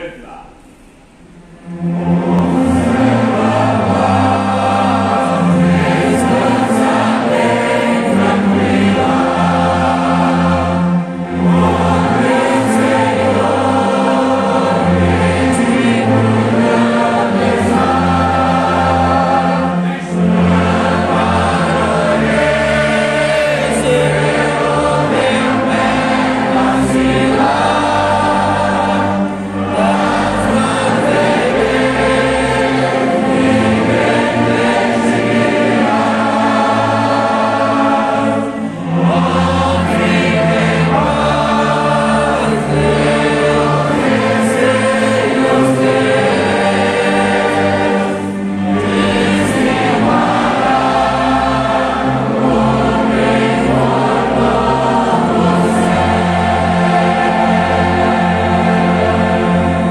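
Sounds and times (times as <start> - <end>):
church orchestra with strings: 0.0 - 59.9
congregation singing a hymn: 0.0 - 59.9.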